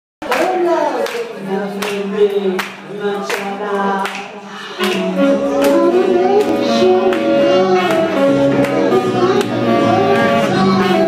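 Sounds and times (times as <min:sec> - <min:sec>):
live band playing: 0:04.7 - 0:11.0.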